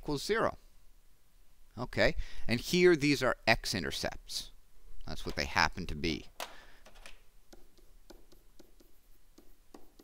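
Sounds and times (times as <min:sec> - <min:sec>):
stylus writing on tablet: 0:07.5 - 0:10.0.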